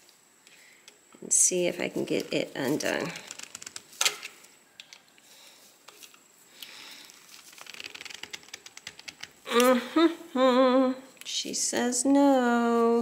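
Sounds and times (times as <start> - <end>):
soft rustling: 1.6 - 4.6.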